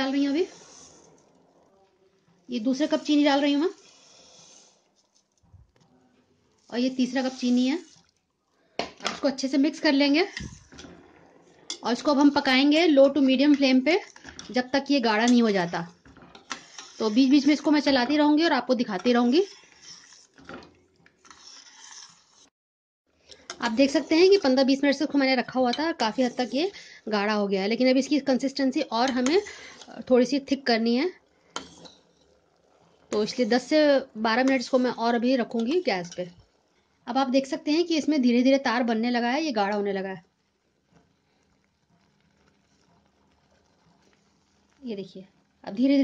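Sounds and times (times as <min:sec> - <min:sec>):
spoon scraping steel pot: 0:00.0 - 0:01.5, 0:02.2 - 0:05.8, 0:06.5 - 0:08.2, 0:08.8 - 0:22.5, 0:23.2 - 0:26.9, 0:27.8 - 0:36.4
faint syrup bubbling: 0:29.2 - 0:35.5, 0:40.2 - 0:45.7
woman speaking: 0:33.1 - 0:36.4, 0:44.8 - 0:46.0.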